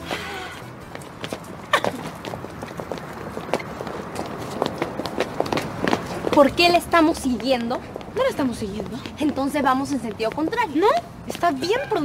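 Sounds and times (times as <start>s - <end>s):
heels clicking on concrete: 0.0s - 12.0s.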